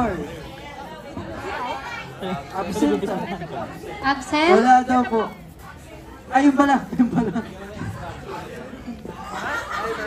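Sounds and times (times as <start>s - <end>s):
audience chatter: 0.0s - 10.0s.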